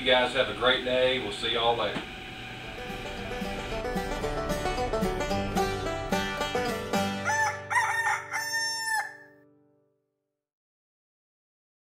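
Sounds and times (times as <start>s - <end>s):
plucked-string music: 2.6s - 8.3s
rooster crowing: 7.0s - 9.4s.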